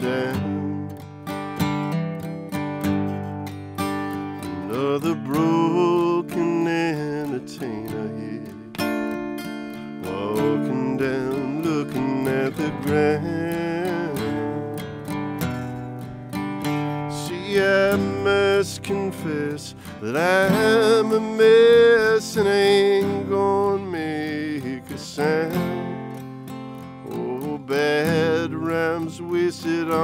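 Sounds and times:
acoustic guitar picking and strumming: 0.0 - 30.0.

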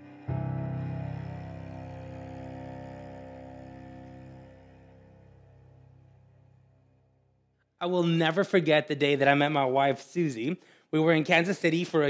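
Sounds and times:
piano and cello chord ringing: 0.0 - 7.3.

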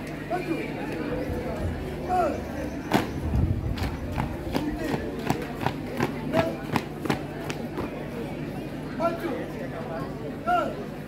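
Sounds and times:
murmur of voices: 0.0 - 11.0
boots marching on pavement: 2.9 - 8.0.

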